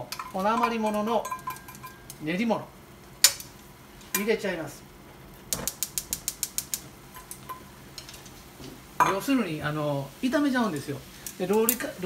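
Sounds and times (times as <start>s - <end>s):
gas stove igniter clicking: 5.5s - 7.6s.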